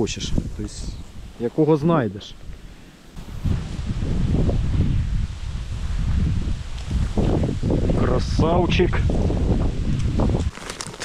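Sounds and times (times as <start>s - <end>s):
wind buffeting microphone: 0.0s - 2.6s, 3.2s - 11.0s
dry reeds rustling: 9.0s - 11.0s.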